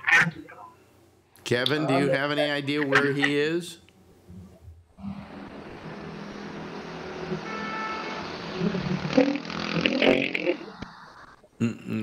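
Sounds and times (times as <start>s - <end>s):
traffic noise: 5.0s - 11.3s.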